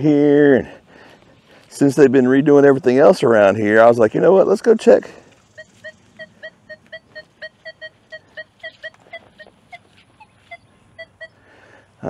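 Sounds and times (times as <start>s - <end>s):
metal detector beeps: 5.5s - 9.5s.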